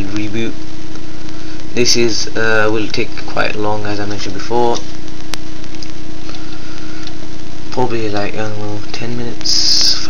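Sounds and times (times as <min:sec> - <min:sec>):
constant low hum: 0:00.0 - 0:10.0
loud steady hiss: 0:00.0 - 0:10.0.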